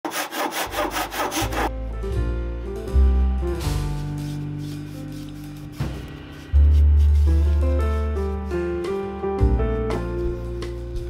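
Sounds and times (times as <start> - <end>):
handsaw cutting wood: 0.0 - 1.7.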